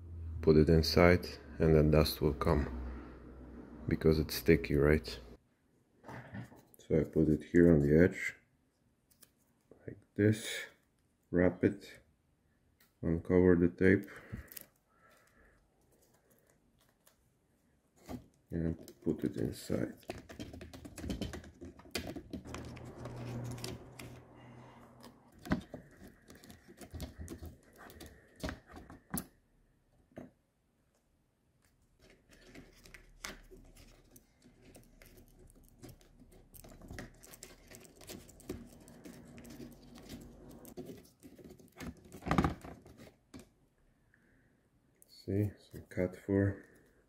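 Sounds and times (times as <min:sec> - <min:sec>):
paper strip clicking and scraping: 0:32.0 - 0:42.2.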